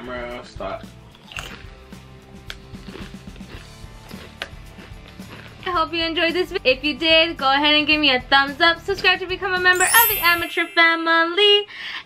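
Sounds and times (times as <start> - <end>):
background music: 9.8 - 11.1.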